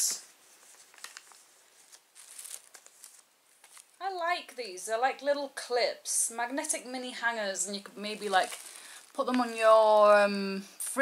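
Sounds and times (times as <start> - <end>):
plastic bag crinkling: 0.6 - 4.0, 7.7 - 10.1.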